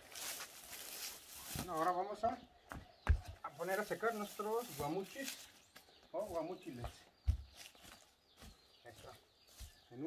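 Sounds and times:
footsteps on concrete: 0:01.5 - 0:10.0.

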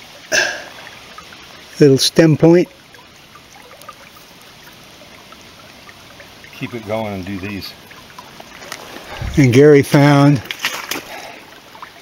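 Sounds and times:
water trickling over rocks: 0:00.0 - 0:12.0.

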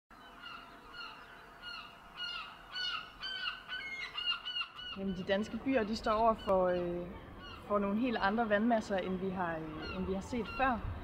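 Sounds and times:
bird honking calls: 0:00.2 - 0:10.9.

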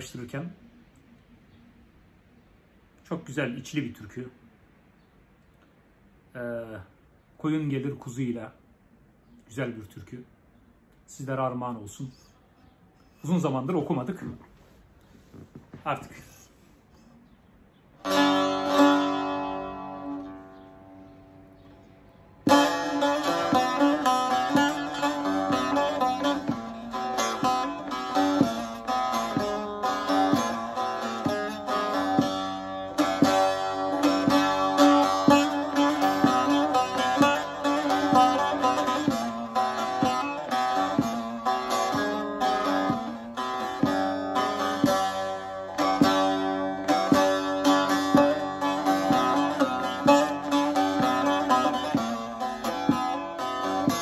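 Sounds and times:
long-necked lute strummed and plucked: 0:18.0 - 0:54.0.

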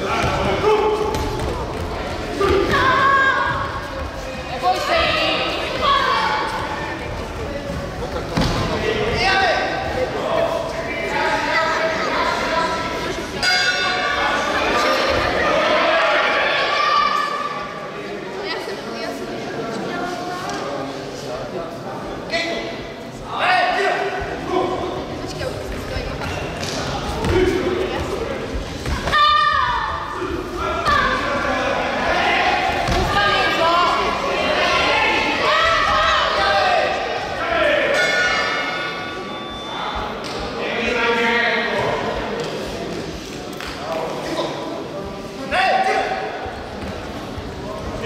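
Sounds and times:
raised voices in echoing hall: 0:00.0 - 0:48.0.

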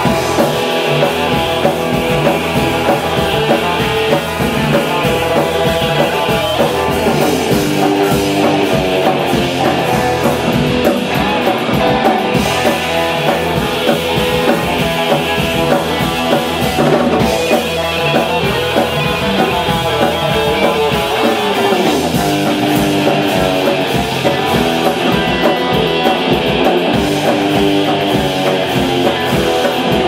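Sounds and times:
drum kit: 0:00.0 - 0:30.0
electric bass: 0:00.0 - 0:30.0
electric guitars: 0:00.0 - 0:30.0.

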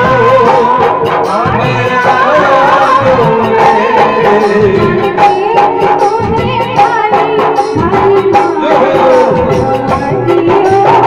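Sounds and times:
folk band with drums: 0:00.0 - 0:11.0
woman singing into microphone: 0:00.0 - 0:11.0.

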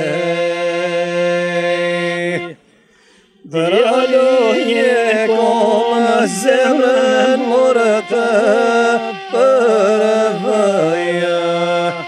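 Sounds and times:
folk singing with wavering notes: 0:00.0 - 0:12.0.

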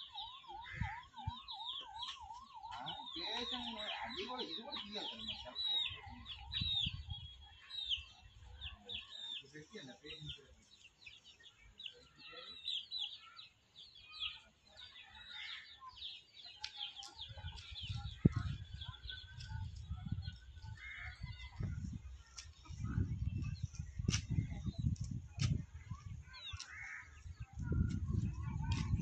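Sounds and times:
young chickens peeping: 0:00.0 - 0:29.0.

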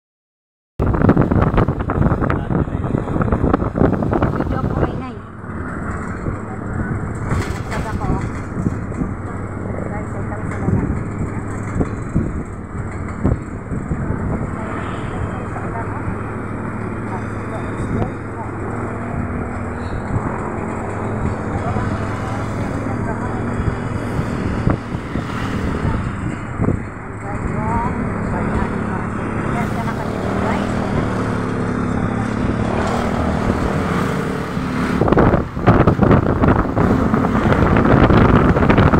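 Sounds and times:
road noise: 0:00.8 - 0:38.9
vehicle engine hum: 0:00.8 - 0:38.9.

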